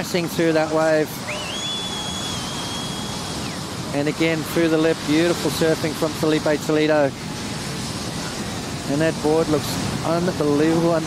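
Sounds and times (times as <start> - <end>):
breaking surf: 0.0 - 11.0
high whistling tone: 1.2 - 3.6.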